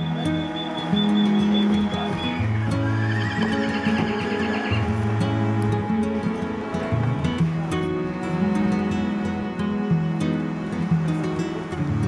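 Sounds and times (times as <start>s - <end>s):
horse whinnying: 2.5s - 4.8s.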